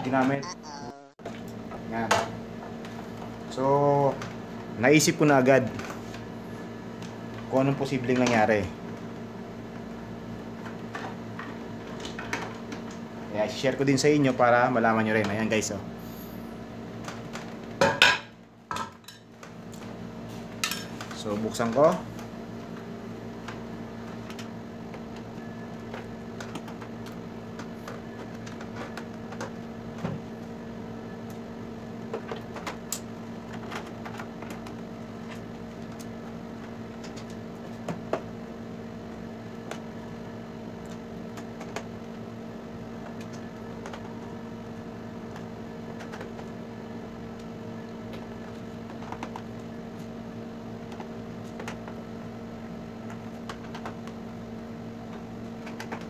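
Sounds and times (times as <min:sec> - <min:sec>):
electrical hum: 0:00.0 - 0:56.0.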